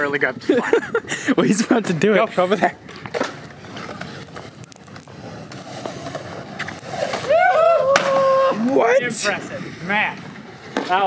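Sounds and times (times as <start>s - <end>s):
skateboard wheels on concrete: 0.0s - 11.0s
skateboard landing clack: 2.8s - 4.1s, 4.8s - 8.8s
people whooping: 7.1s - 9.2s.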